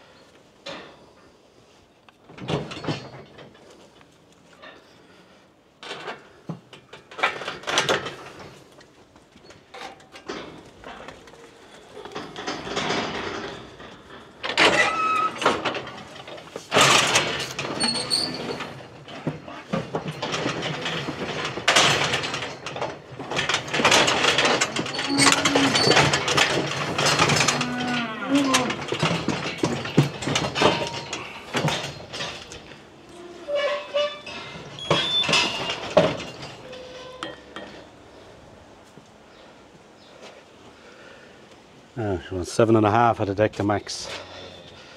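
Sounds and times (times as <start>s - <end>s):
metal cattle crush clanging: 9.4s - 37.9s
calf bawling: 24.9s - 26.1s, 27.3s - 28.8s.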